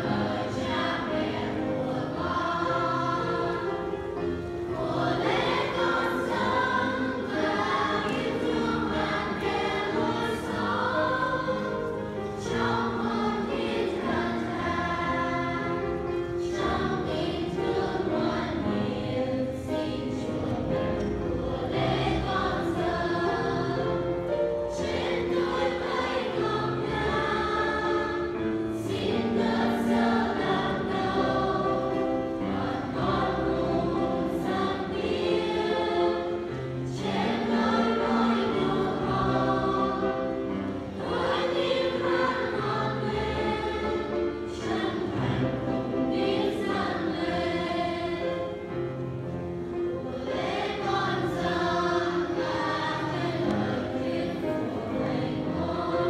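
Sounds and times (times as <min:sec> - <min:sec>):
mixed choir singing a hymn: 0:00.0 - 0:56.0
piano: 0:00.0 - 0:56.0.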